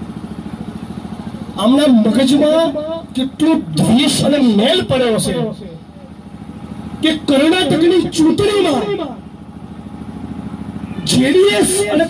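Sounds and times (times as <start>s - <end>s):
amplified speech outdoors: 0.0s - 12.0s
small engine running: 0.0s - 12.0s.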